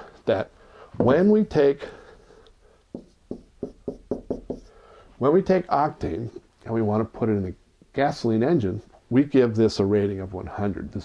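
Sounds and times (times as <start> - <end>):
marker tapping on a whiteboard: 2.9 - 4.7.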